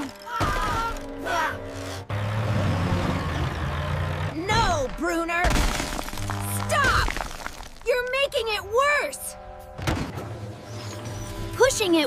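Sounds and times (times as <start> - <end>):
cartoon background music: 0.0 - 2.1, 7.8 - 12.0.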